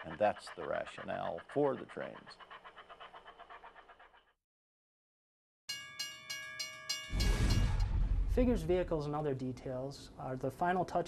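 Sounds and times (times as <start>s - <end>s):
railroad crossing bell ringing: 5.7s - 7.8s.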